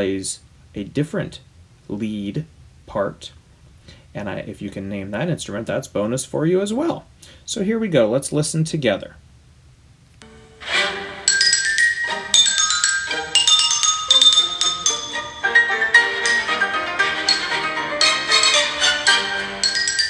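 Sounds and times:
xylophone music: 0:10.2 - 0:20.0.

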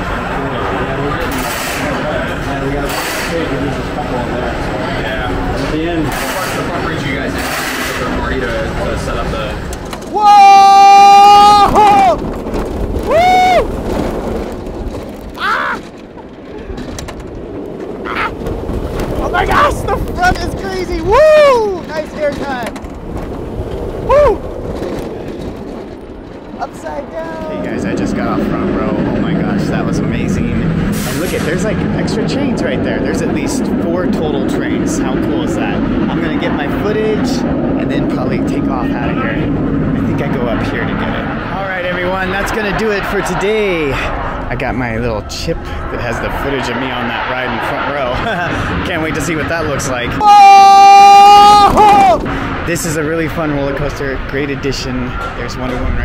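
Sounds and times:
rush of noise: 0:00.0 - 0:56.0
riders screaming: 0:10.0 - 0:13.8, 0:15.3 - 0:16.0, 0:18.0 - 0:18.5, 0:50.2 - 0:52.5
riders whooping: 0:10.0 - 0:14.2, 0:15.3 - 0:16.8, 0:18.0 - 0:22.2, 0:23.9 - 0:25.1, 0:50.1 - 0:52.5.

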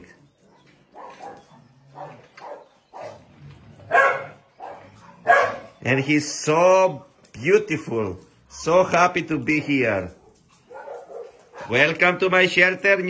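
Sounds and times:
dogs barking: 0:00.3 - 0:06.0, 0:09.4 - 0:12.5.

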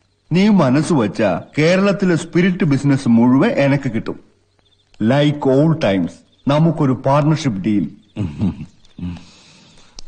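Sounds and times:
man laughing: 0:08.2 - 0:09.2.

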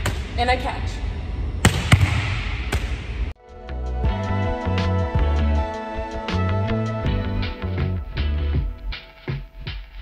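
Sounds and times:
volleyball smacks echoing: 0:01.6 - 0:03.1.

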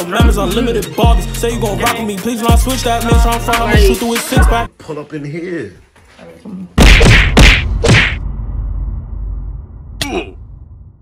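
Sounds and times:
whoosh and hit sound effects: 0:06.8 - 0:09.8
low rumble: 0:08.2 - 0:11.0.

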